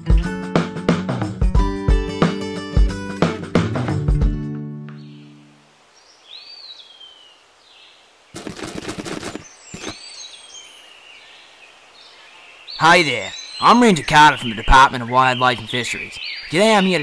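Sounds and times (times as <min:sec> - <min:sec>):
guitar music: 0:00.0 - 0:05.4
birds calling: 0:05.0 - 0:17.0
rapid crackling clicks: 0:08.4 - 0:10.0.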